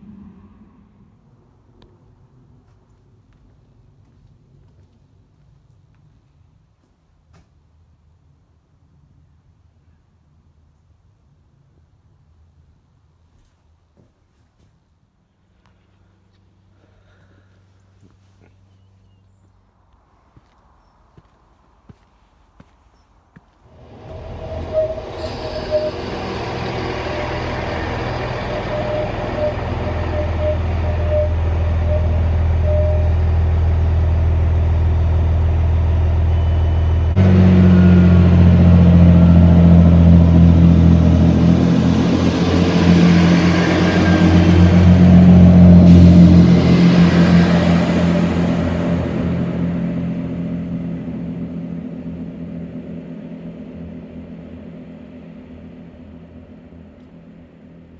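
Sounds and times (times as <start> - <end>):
train diesel engines: 0.0 - 7.0, 15.4 - 57.9
wheel and rail noise: 19.9 - 57.9
low steady hum: 23.6 - 57.9
short high chirps: 23.8 - 33.8.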